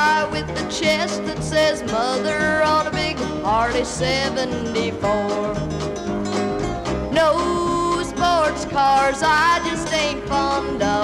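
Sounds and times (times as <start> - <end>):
country music with guitars: 0.0 - 11.0.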